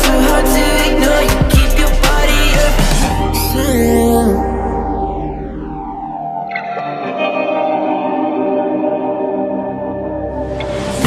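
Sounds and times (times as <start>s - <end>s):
instrumental music chords: 0.0s - 11.0s.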